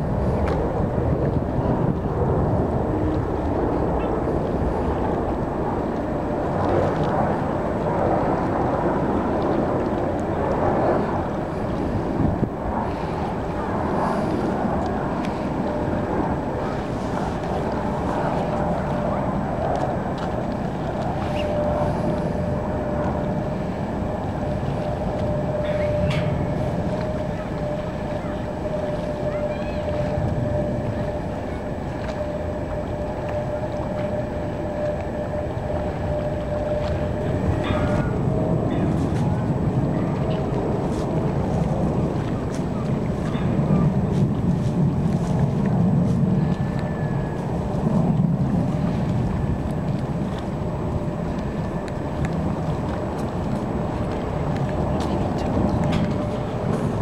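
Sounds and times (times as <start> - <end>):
jet engine rumble: 0.0 - 57.0
steady whine: 0.0 - 57.0
wind on microphone: 0.0 - 57.0.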